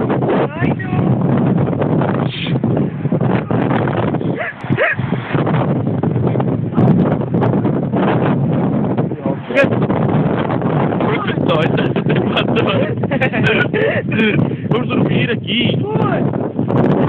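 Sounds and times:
microphone handling noise: 0.0 - 17.0
wind rumble on microphone: 0.0 - 17.0.

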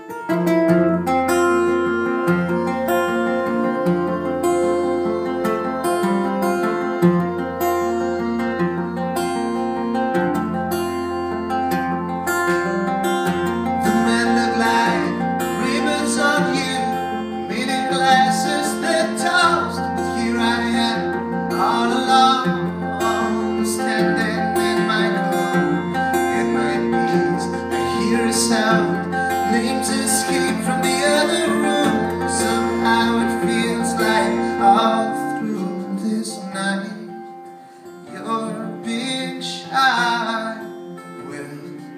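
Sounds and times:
acoustic guitar strumming: 0.0 - 41.9
man singing: 13.6 - 37.3, 38.0 - 41.9.

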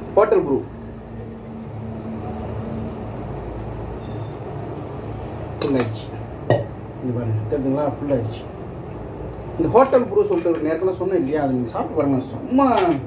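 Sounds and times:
tea pouring into flask: 0.8 - 4.1.

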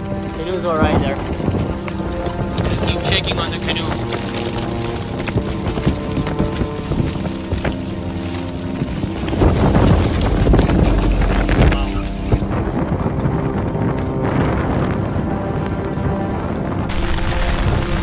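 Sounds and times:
background music: 0.0 - 18.0
wind and rain on microphone: 0.0 - 18.0
wind gust buffeting microphone: 0.0 - 18.0.

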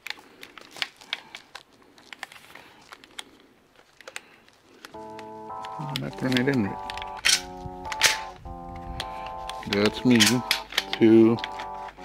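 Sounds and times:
shotgun shells loading clicks: 0.0 - 12.0
music with held notes: 5.0 - 12.0.

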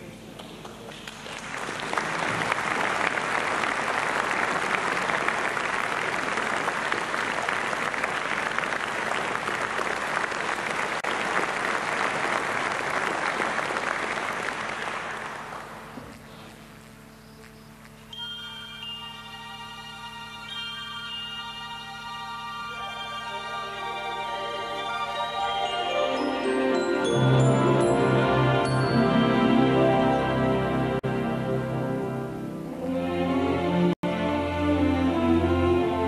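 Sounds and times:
audience applause: 0.7 - 16.0.

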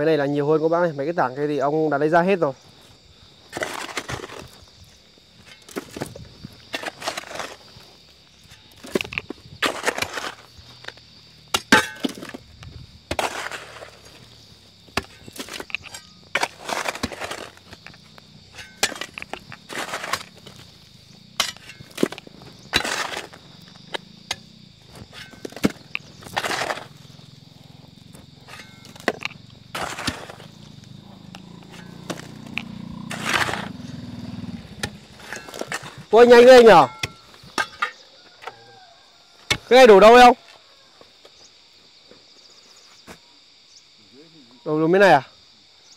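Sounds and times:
pick and iron bar striking rock: 8.5 - 14.2, 14.9 - 20.6, 21.4 - 27.1, 28.1 - 30.7, 31.4 - 38.0.

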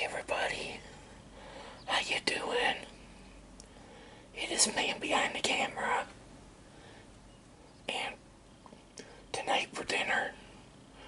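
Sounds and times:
man whispering: 0.0 - 0.8, 1.9 - 2.9, 4.4 - 6.1, 7.9 - 8.2, 9.3 - 10.4.

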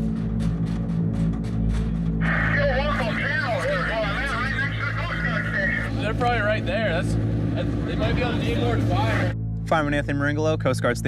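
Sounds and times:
boat engine hum: 0.0 - 9.7
man talking over radio: 2.2 - 9.4.

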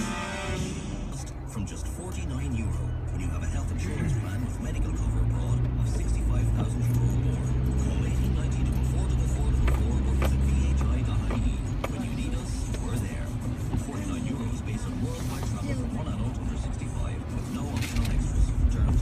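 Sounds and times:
car engine and road drone: 0.0 - 19.0
faint radio talk: 1.0 - 19.0.

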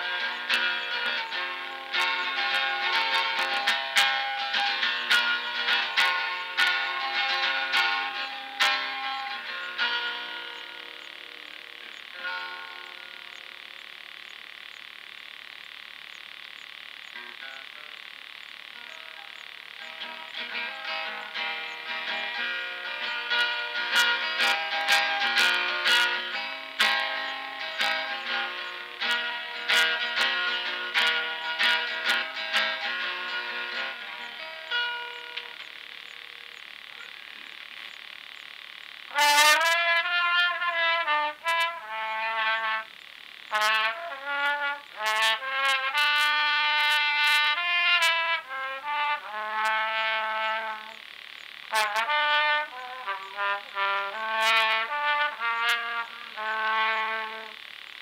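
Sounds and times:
guitar chord ringing: 0.0 - 13.5, 18.8 - 35.6
pulsing chirring chorus: 0.0 - 45.9
recording hiss: 0.0 - 58.0
distorted trumpet held note: 39.1 - 51.1, 51.7 - 57.6.

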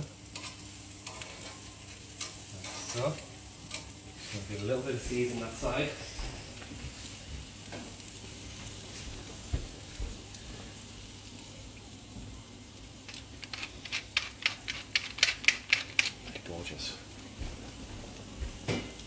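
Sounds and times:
prawns sizzling on grill: 0.0 - 19.0.

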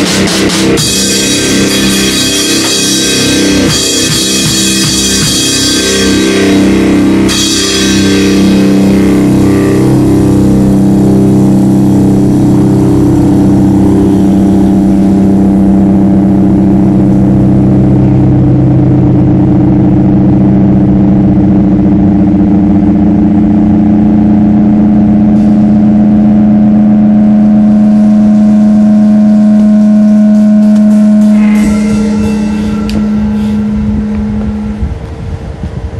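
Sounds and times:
drum and cymbal crash: 0.0 - 15.6, 25.4 - 25.8, 30.3 - 35.0
distorted electric guitar chord: 0.0 - 35.4
amplifier noise and hum: 0.0 - 35.9.

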